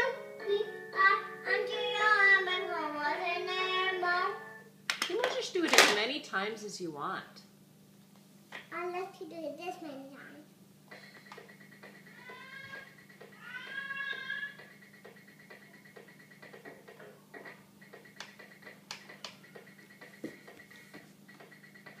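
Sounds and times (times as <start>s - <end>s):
electronic toy meows: 11.8s - 14.8s.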